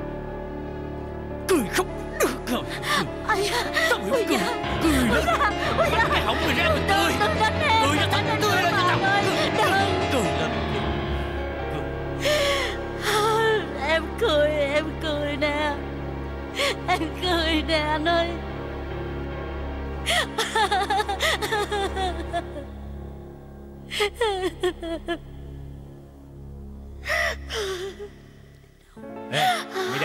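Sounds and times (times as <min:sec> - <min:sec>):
background music: 0:00.0 - 0:30.0
woman sobbing: 0:01.5 - 0:10.4, 0:20.1 - 0:22.8, 0:23.9 - 0:25.4, 0:27.1 - 0:28.2, 0:29.3 - 0:30.0
woman sob-laughing: 0:20.1 - 0:22.6.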